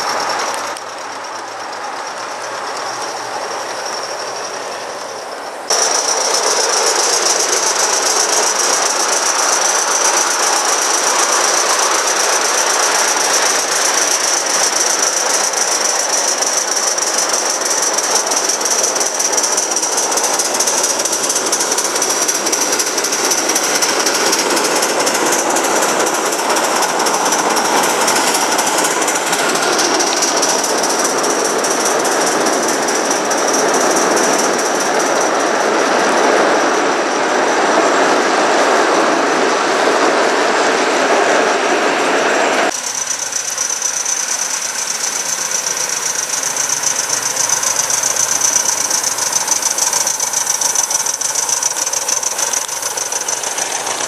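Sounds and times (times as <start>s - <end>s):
high steady whine: 0.0s - 54.0s
train wheels rattling on rails: 0.0s - 54.0s.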